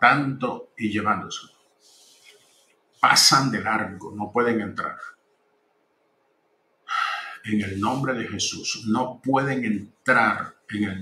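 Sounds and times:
man's voice: 0.0 - 1.4, 3.0 - 5.1, 6.9 - 11.0
sharp intake of breath: 1.8 - 2.7, 6.9 - 7.5.

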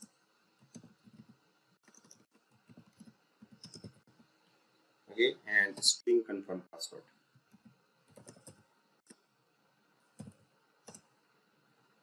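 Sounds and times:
computer keyboard typing: 0.0 - 4.3, 7.5 - 8.6, 10.2 - 11.1.

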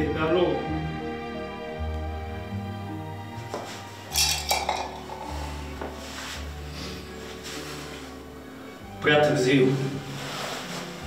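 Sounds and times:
soft background music: 0.0 - 11.0
metal mug clinking: 4.1 - 5.4.

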